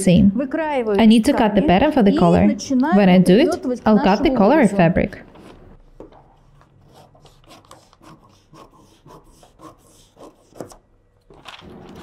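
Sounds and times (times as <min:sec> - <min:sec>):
scissors snipping paper: 0:06.9 - 0:12.0
paper crackling: 0:11.2 - 0:12.0.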